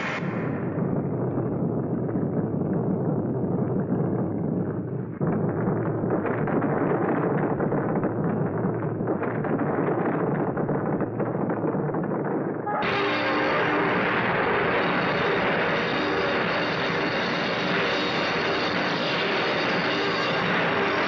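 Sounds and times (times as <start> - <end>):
roar of burning flames: 0.0 - 21.0.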